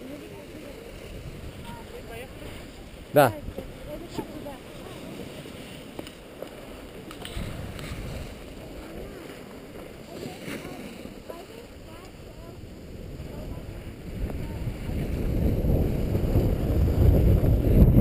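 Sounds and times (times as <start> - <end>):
skis hissing over snow: 0.0 - 16.9
wind rumbling on microphone: 0.0 - 18.0.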